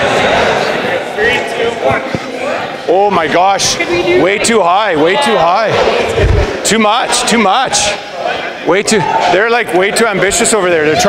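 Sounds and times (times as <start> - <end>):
people chattering and calling out: 0.0 - 11.0.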